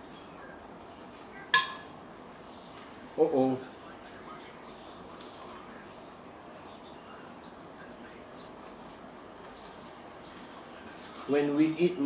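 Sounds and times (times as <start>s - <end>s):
metal spoon clinking on dish: 1.5s - 1.9s.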